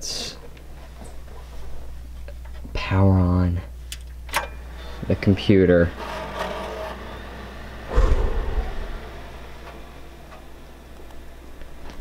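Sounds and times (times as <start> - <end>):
computer fans humming: 7.6 - 9.9
loud thump: 7.9 - 9.2.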